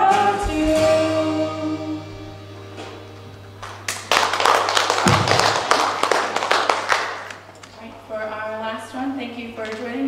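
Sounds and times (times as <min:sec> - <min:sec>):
congregation applauding: 0:03.6 - 0:07.7.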